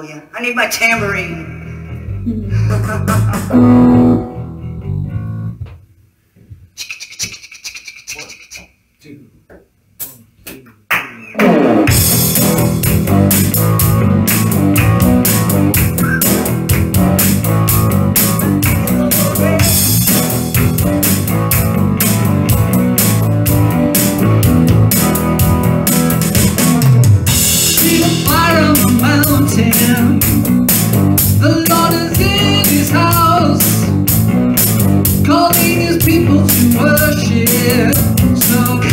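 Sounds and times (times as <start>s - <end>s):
rock band playing instrumental: 3.1s - 5.6s, 11.5s - 38.9s.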